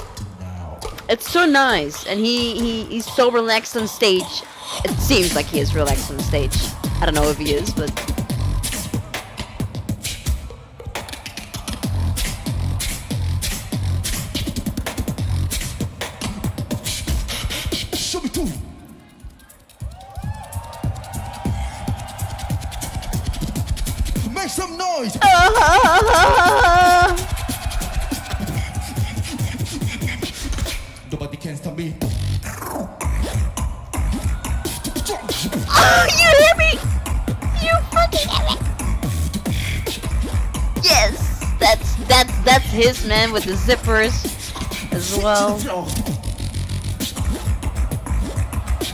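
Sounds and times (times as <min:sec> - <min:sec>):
beatboxed kick drum: 0:00.0 - 0:24.4, 0:25.2 - 0:31.1, 0:32.0 - 0:48.9
beatboxed hi-hat and snare clicks: 0:04.9 - 0:24.3, 0:26.9 - 0:31.1, 0:38.7 - 0:48.9.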